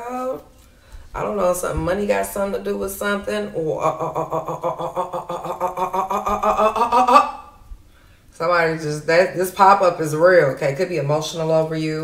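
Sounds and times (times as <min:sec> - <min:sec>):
woman humming wordlessly: 0:03.5 - 0:07.6.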